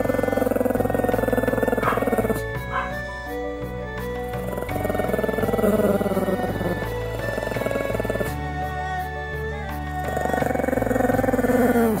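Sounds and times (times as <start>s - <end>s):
dog growling: 0.0s - 3.1s, 4.1s - 8.6s, 9.9s - 12.0s
background music: 0.0s - 12.0s.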